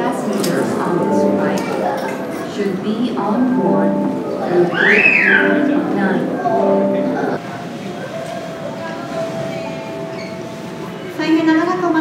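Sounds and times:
busy airport lounge noise: 0:00.0 - 0:12.0.

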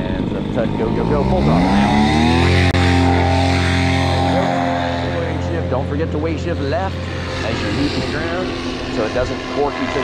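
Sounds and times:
paramotor engine and propeller: 0:00.0 - 0:10.0.

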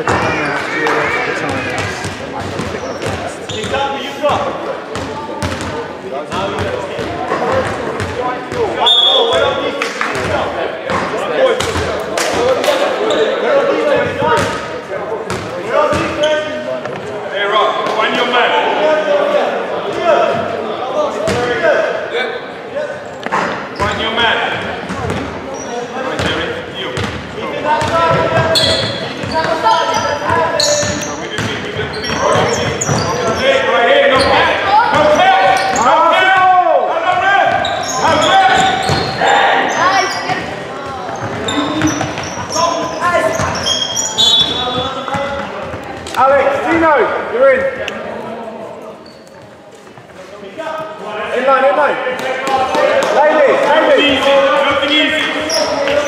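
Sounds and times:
players calling out: 0:00.0 - 0:49.6
basketball bouncing on wooden court: 0:01.5 - 0:03.8, 0:04.9 - 0:08.6, 0:24.9 - 0:25.3, 0:27.0 - 0:27.2, 0:30.3 - 0:33.4, 0:37.6 - 0:39.2, 0:40.3 - 0:42.6.

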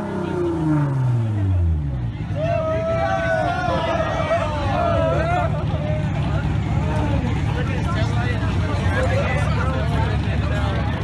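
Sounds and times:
car engines rumbling: 0:00.0 - 0:11.0
crowd talking and calling out: 0:00.0 - 0:11.0.

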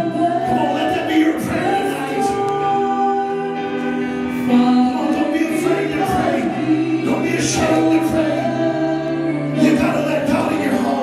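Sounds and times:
gospel singing through microphones: 0:00.0 - 0:11.0
keyboard accompaniment: 0:00.0 - 0:11.0.

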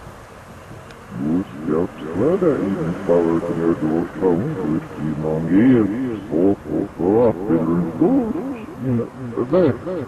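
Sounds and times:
low background rumble: 0:00.0 - 0:10.0
voice sweeping up and down: 0:01.1 - 0:10.0.

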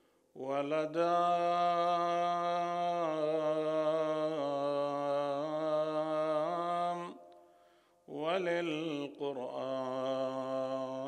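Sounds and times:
man chanting devotional poetry: 0:00.4 - 0:07.2, 0:08.1 - 0:11.0.

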